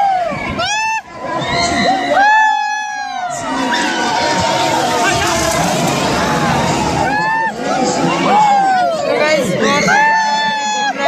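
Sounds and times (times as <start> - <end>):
riders screaming: 0.0 - 11.0.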